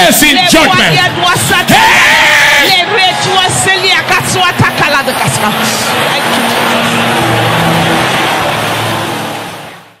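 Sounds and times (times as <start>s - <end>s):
congregation praying aloud: 0.0s - 6.9s.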